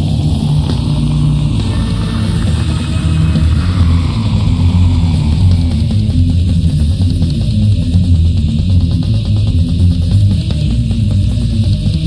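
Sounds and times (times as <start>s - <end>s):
bass guitar: 0.0s - 12.0s
distorted guitars: 0.0s - 12.0s
drums: 0.0s - 12.0s.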